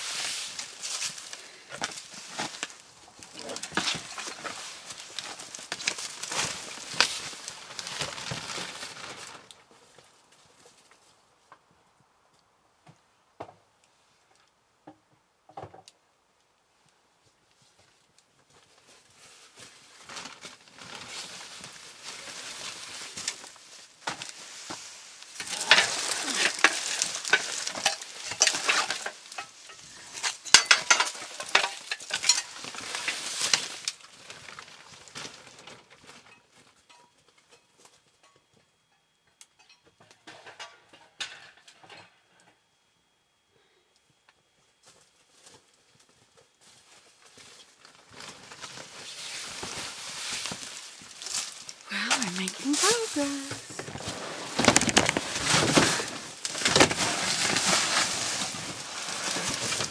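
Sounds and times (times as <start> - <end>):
plastic bags rustling and crinkling: 0.0 - 10.8, 17.9 - 36.8, 44.9 - 59.9.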